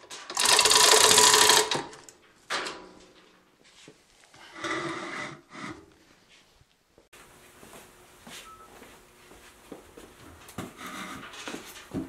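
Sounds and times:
chain hoist clattering: 0.0s - 2.2s.

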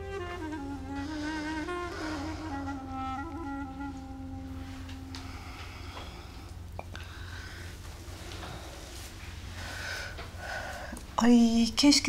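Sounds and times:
soft background score: 0.0s - 12.0s.

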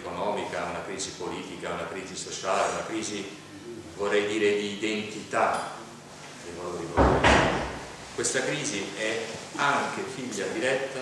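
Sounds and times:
knock: 7.0s - 7.9s
heavy thump: 7.0s - 8.0s.

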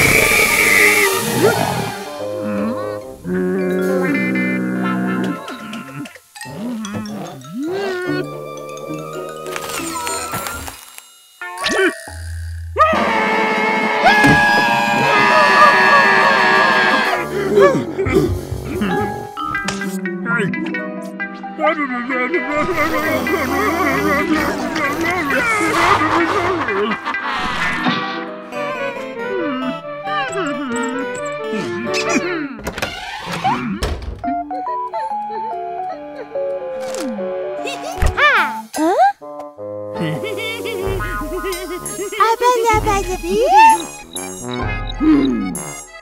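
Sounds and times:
music: 0.0s - 46.0s
cartoon character screaming: 12.8s - 17.2s
wailing sobs: 14.0s - 19.1s
cartoon thunk: 33.8s - 34.3s.

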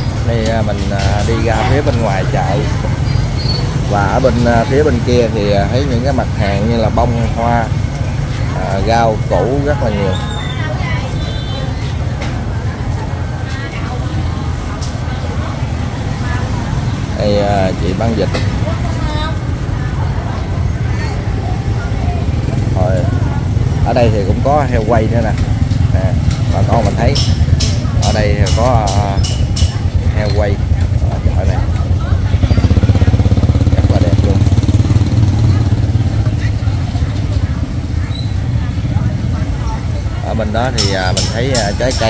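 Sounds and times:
motor scooters riding past: 0.0s - 28.1s, 29.4s - 40.8s
people talking nearby: 0.0s - 42.0s.

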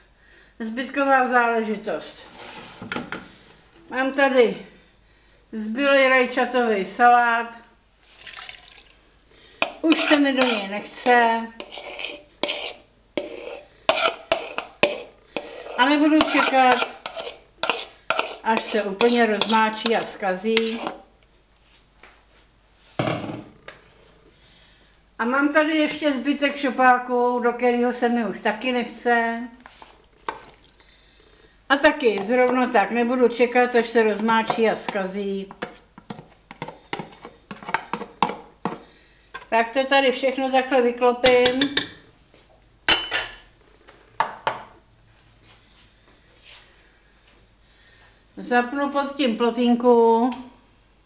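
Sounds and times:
spoon clinking on metal pot: 42.9s - 43.4s.

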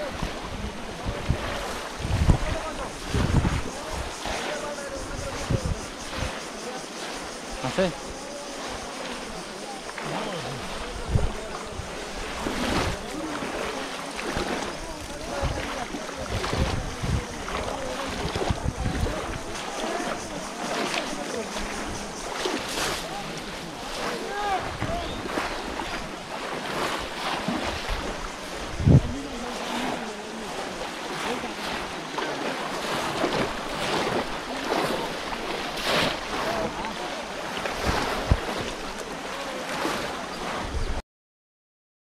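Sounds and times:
wind buffeting microphone: 0.0s - 6.6s, 10.6s - 23.0s, 23.9s - 26.2s, 26.8s - 30.1s, 37.8s - 38.9s
voices calling out: 0.0s - 40.3s
water sloshing: 0.0s - 40.7s.

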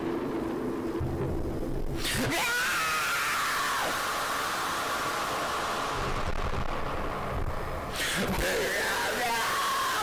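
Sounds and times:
low rumble: 0.0s - 2.1s, 5.2s - 8.4s
noisy distorted hiss: 0.0s - 10.0s.

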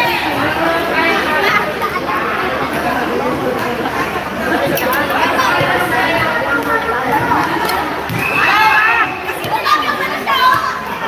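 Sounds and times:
background chatter: 0.0s - 11.0s
players shouting in echoing hall: 5.1s - 11.0s.

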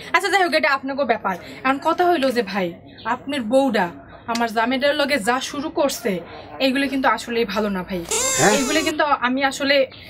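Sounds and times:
high-pitched vocal cry: 8.1s - 9.0s
person speaking: 8.1s - 9.0s.

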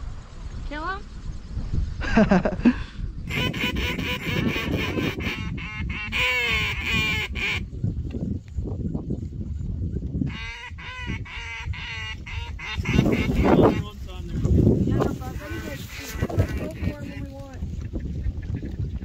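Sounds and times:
geese honking: 3.3s - 7.6s, 10.3s - 14.0s, 15.3s - 17.4s.

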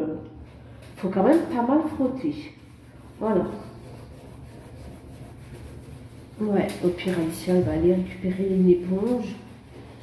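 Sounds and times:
steady low hum: 0.0s - 10.0s
scrubbing on steel sink: 0.5s - 10.0s.

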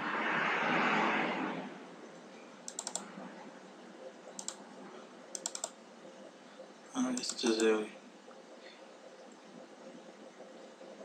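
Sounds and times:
brief rush of noise: 0.0s - 1.8s
computer mouse clicks: 2.6s - 3.1s, 4.3s - 4.6s, 5.3s - 5.8s, 7.1s - 7.8s.

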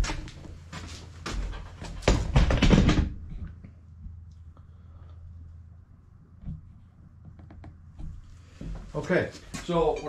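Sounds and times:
clattering knocks and rattles: 1.3s - 4.1s.

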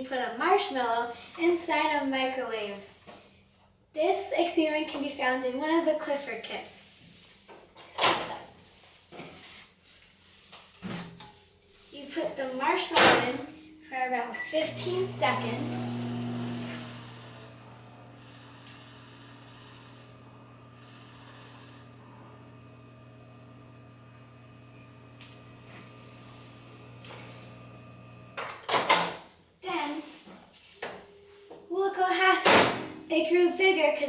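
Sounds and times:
microwave oven humming: 12.8s - 29.0s.

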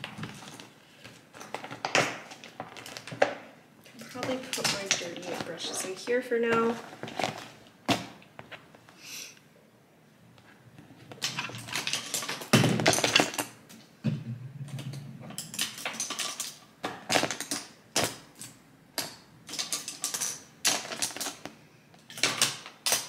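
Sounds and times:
makeup brushes clicking and rattling: 1.3s - 7.4s, 11.1s - 13.8s, 14.7s - 23.0s.

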